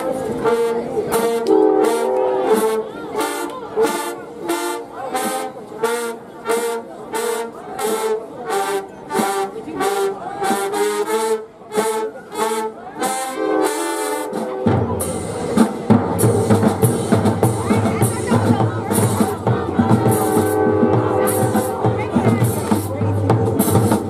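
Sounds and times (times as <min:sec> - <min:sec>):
marching band brass notes: 0:00.0 - 0:24.0
percussion hits: 0:14.2 - 0:24.0.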